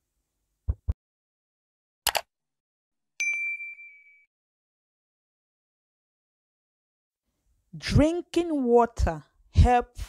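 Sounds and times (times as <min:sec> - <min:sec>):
high bell ding: 0:03.2 - 0:04.3.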